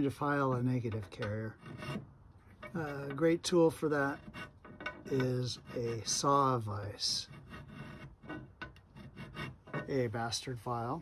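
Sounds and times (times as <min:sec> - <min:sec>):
file scraping metal: 0:00.7 - 0:10.4.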